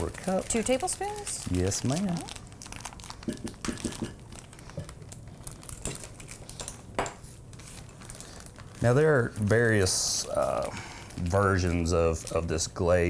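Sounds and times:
paper bag crinkling: 0:00.0 - 0:13.0.

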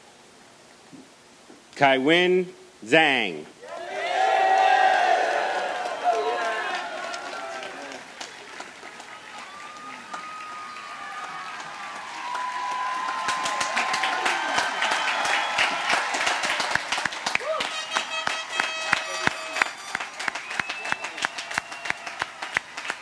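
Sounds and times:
crowd cheering and shouting: 0:03.6 - 0:08.1, 0:09.1 - 0:19.8
crowd clapping: 0:03.6 - 0:23.0.

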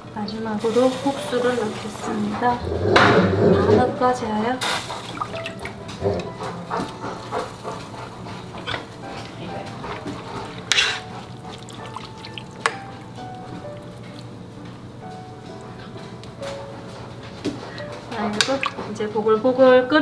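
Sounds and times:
light background music: 0:00.0 - 0:20.0.

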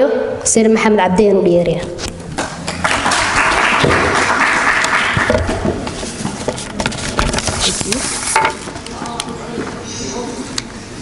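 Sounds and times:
audience applause: 0:02.7 - 0:05.8.

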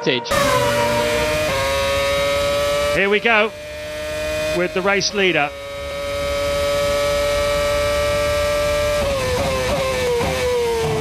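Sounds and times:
race car engine at high revs: 0:00.3 - 0:11.0.

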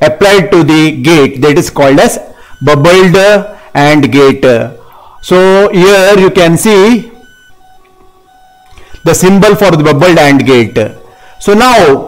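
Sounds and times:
faint electronic whine: 0:00.0 - 0:12.0.

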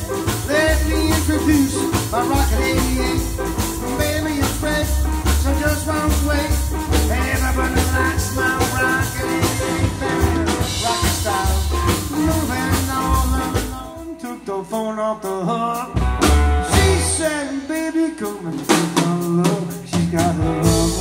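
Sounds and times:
upright bass: 0:00.0 - 0:14.2, 0:15.8 - 0:18.0, 0:18.9 - 0:21.0
acoustic guitar: 0:00.0 - 0:18.4
drum kit: 0:00.0 - 0:21.0.

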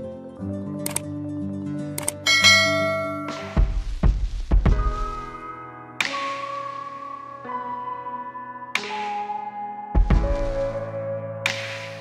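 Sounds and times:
background music: 0:00.0 - 0:12.0
click: 0:00.8 - 0:01.1, 0:02.0 - 0:02.2
bright bell-like ding: 0:02.3 - 0:03.6.

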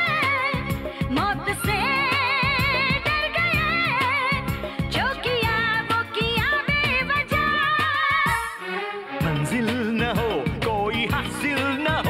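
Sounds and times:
person singing: 0:09.2 - 0:12.0.

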